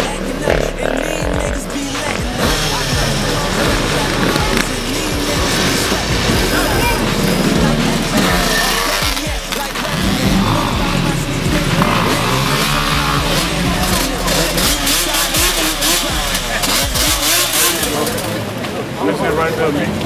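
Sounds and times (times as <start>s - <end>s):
music: 0.0s - 18.4s
crowd chatter: 0.0s - 20.0s
motorbike engines revving: 0.0s - 20.0s.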